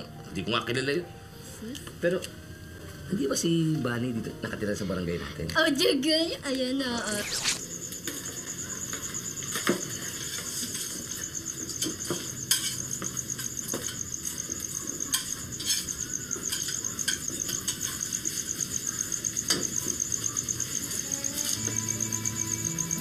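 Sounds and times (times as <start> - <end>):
soft music: 0.0 - 10.0, 19.8 - 23.0
crickets chirping: 0.0 - 23.0.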